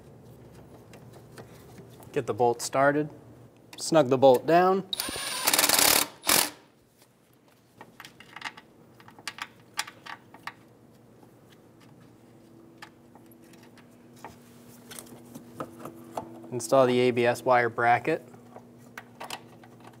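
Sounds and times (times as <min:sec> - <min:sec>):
cordless power tool spinning socket: 0:05.0 - 0:06.6.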